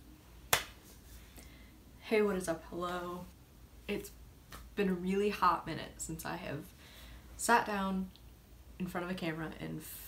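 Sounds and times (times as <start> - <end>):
hand clap: 0.5 - 0.8.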